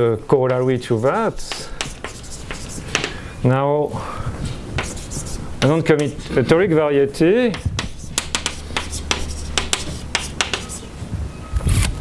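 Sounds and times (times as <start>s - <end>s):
chalk tapping and scratching on blackboard: 0.5s - 3.2s, 4.5s - 6.8s, 7.4s - 10.9s.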